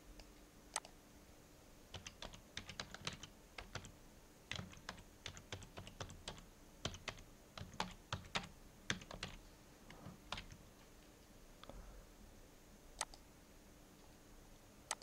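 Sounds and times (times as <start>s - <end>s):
keyboard keys clicking: 1.9s - 9.4s, 10.3s - 10.6s.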